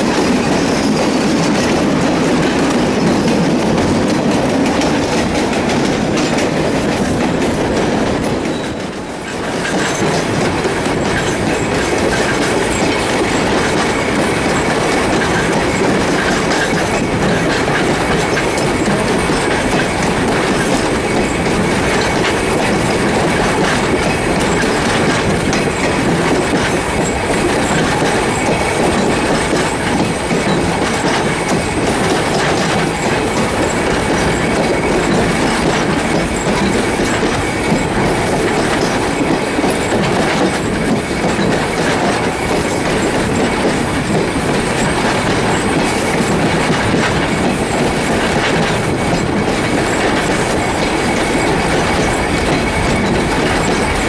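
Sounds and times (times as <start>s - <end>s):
train wheels clattering on rails: 0.0s - 54.0s.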